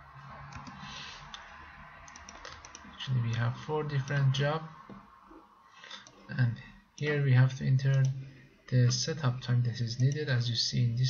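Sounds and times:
computer keyboard typing: 0:02.0 - 0:02.9.

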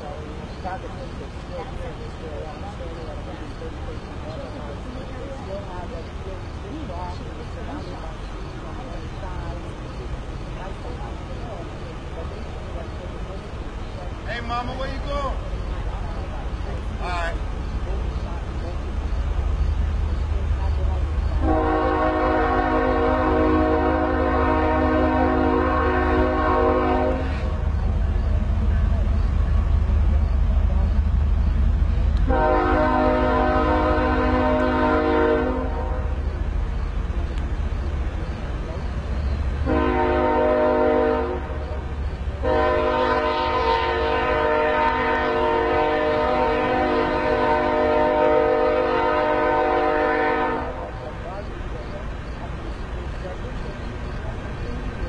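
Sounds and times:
train horn blasts: 0:21.4 - 0:27.8, 0:32.2 - 0:36.2, 0:39.6 - 0:51.1.

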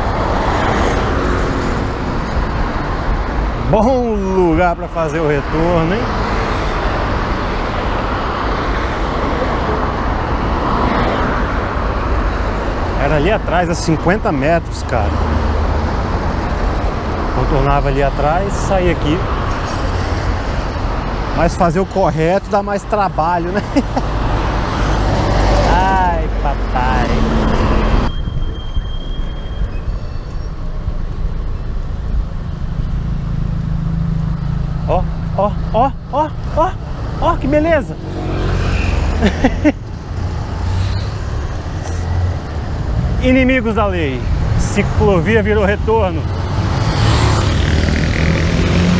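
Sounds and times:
road traffic rumble: 0:00.0 - 0:48.9
man calling out: 0:34.8 - 0:38.1.

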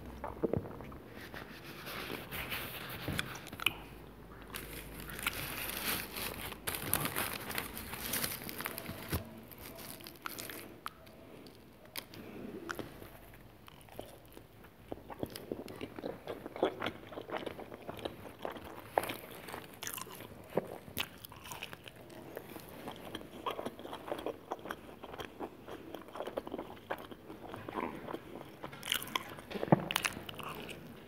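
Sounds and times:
crunchy chewing of pizza: 0:00.0 - 0:31.0.

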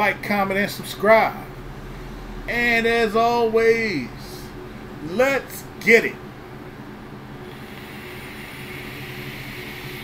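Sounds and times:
vape hissing: 0:07.4 - 0:10.0.

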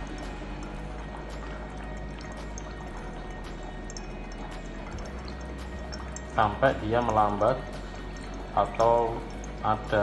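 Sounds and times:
air bubbling through water: 0:00.0 - 0:10.0
air pump humming: 0:00.0 - 0:10.0.

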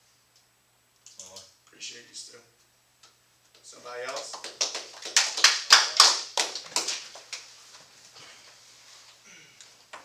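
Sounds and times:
people clapping: 0:03.6 - 0:07.6.

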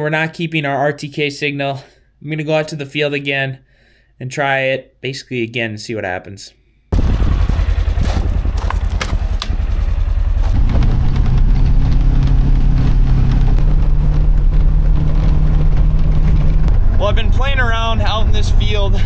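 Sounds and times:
vehicle engine revving: 0:07.0 - 0:19.0.

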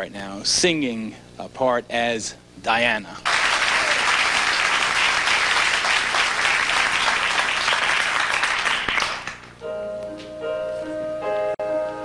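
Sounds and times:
studio audience applauding: 0:03.2 - 0:09.6.

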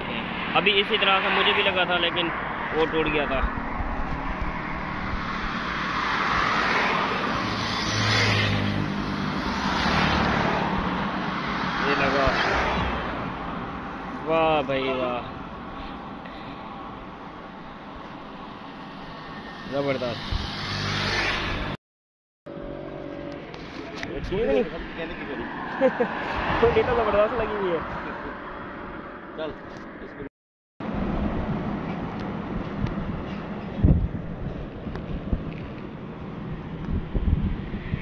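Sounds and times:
cars passing by: 0:00.0 - 0:21.8, 0:22.5 - 0:38.0
road noise: 0:00.0 - 0:21.8, 0:22.5 - 0:38.0
vehicle engine drone: 0:22.5 - 0:27.1, 0:30.8 - 0:38.0.

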